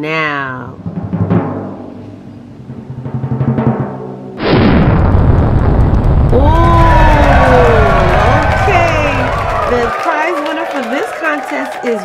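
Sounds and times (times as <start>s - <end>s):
recorded crowd cheer: 6.2s - 12.0s.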